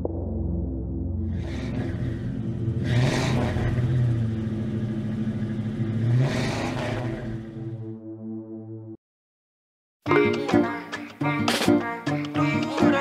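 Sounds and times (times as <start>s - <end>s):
low music drone: 0.0s - 9.0s
car engine revving: 1.3s - 7.9s.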